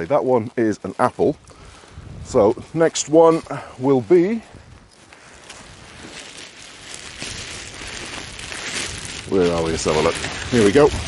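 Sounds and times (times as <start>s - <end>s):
rustling: 0.0s - 11.0s
footfalls on grass: 0.4s - 11.0s
wind on microphone: 1.6s - 2.8s, 4.4s - 5.0s, 7.0s - 11.0s.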